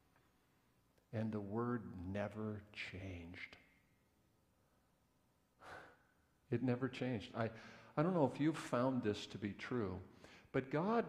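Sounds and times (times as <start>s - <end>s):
man breathing: 5.6s - 6.3s, 7.5s - 8.0s, 10.1s - 10.5s.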